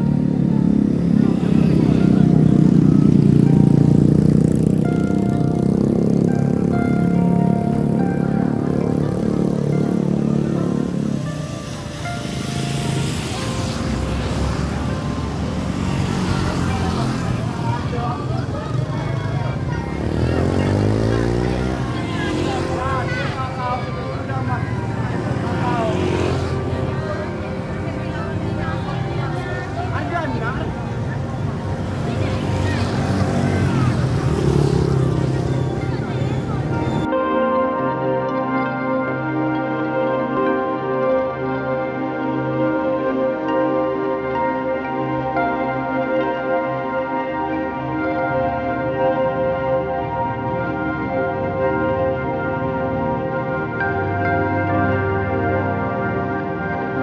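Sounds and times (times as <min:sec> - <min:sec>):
motorcycle engines running: 0:00.0 - 0:37.1
people's voices: 0:00.0 - 0:38.5.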